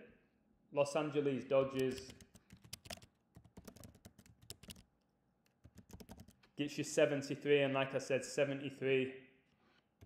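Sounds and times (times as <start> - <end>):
keyboard typing: 1.8 - 4.9, 5.5 - 6.5.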